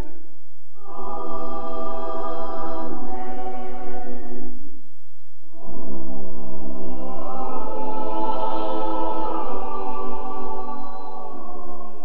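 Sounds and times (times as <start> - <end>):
church choir singing: 0.8 - 4.6, 5.5 - 12.0.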